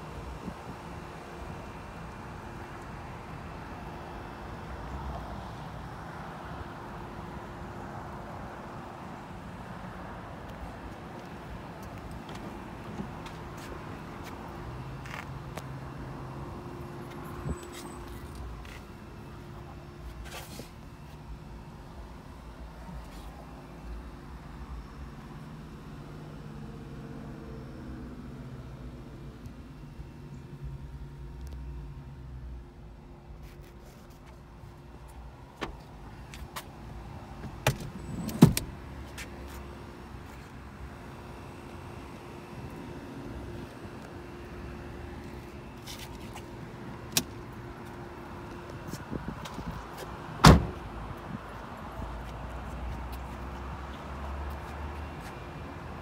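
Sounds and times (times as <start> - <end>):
parked car low hum: 0.0 - 56.0.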